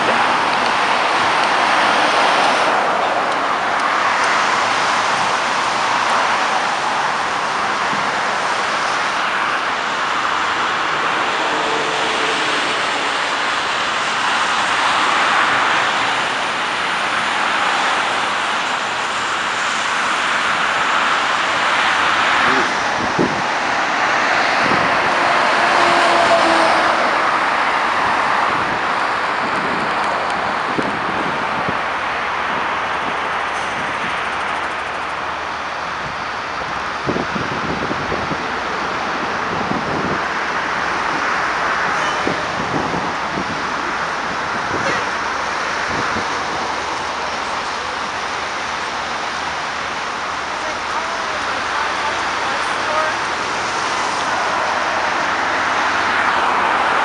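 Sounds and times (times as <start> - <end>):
traffic passing on expressway: 0.0 - 57.0.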